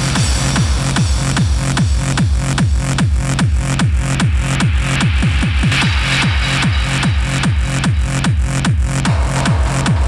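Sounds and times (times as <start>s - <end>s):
fast hard trance music: 0.0s - 10.0s.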